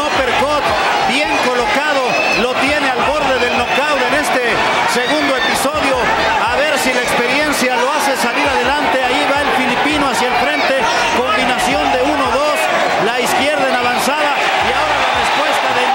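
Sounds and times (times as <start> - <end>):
arena crowd noise: 0.0 - 15.9
man commentating: 0.0 - 15.9.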